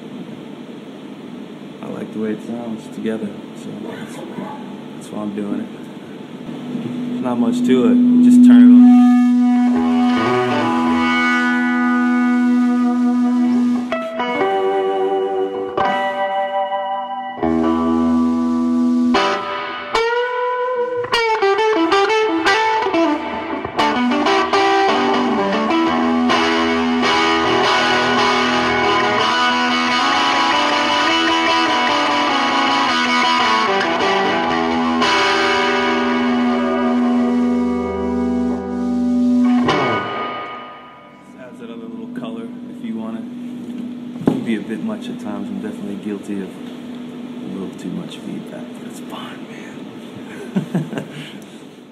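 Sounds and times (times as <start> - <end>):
guitar feedback: 6.0 - 47.6
distorted electric guitar: 6.4 - 44.1.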